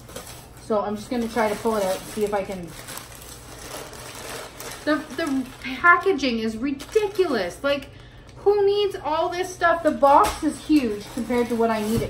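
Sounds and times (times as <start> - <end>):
packing paper rustling and crinkling: 0.0 - 8.4, 9.3 - 12.0.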